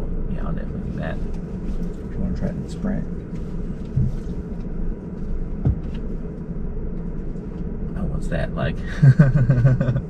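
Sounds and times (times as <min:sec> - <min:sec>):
road and tyre rumble in car: 0:00.0 - 0:10.0
short thump: 0:05.6 - 0:06.1.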